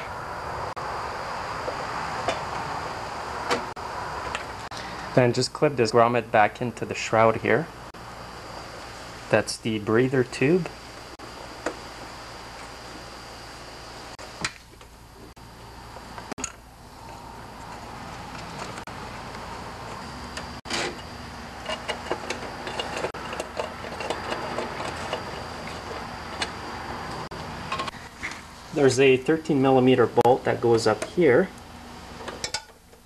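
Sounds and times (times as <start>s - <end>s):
steady low hum: 0.0s - 33.0s
sharp clicks and knocks: 21.6s - 28.4s.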